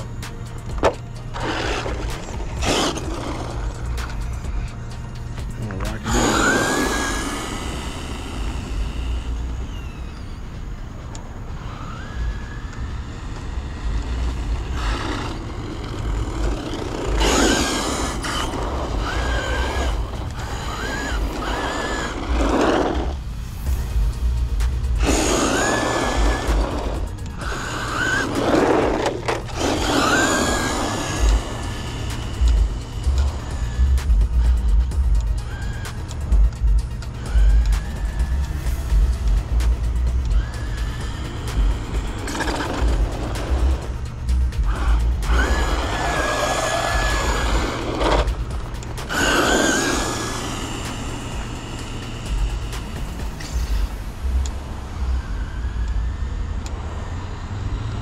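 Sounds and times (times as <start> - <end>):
background music: 0.0 - 58.0
electric toy truck motor whining: 0.0 - 58.0.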